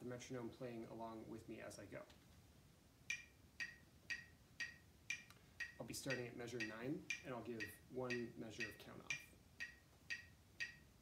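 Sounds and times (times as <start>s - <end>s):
metronome ticking: 3.1s - 11.0s.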